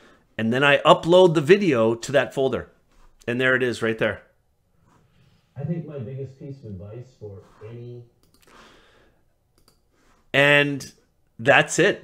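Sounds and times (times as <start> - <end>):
computer mouse clicks: 8.2 - 8.6, 9.5 - 10.2
soft breath: 8.4 - 9.3.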